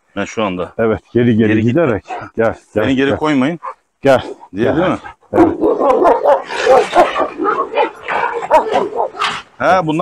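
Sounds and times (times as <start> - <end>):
dogs barking and yelping: 1.5 - 9.5.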